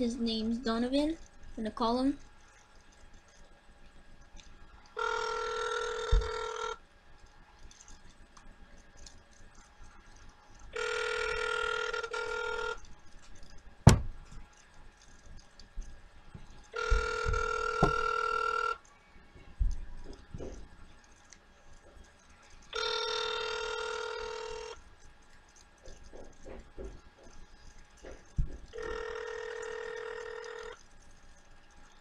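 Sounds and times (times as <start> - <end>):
phone ringback tone: 5.0 - 6.8, 10.8 - 12.8, 16.8 - 18.8, 22.8 - 24.8, 28.8 - 30.8
low knocks: 13.8 - 14.2.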